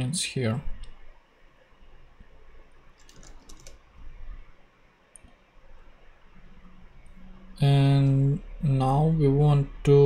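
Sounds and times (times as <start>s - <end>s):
computer keyboard keys clicking: 3.0s - 3.8s.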